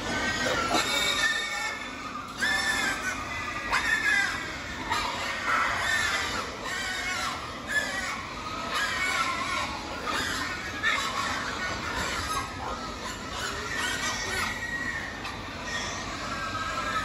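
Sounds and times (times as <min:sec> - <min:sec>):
young pigs squealing: 0:00.0 - 0:17.0.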